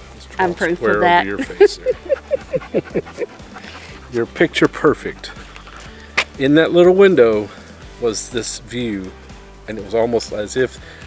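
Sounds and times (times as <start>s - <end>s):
person laughing: 1.2s - 4.0s.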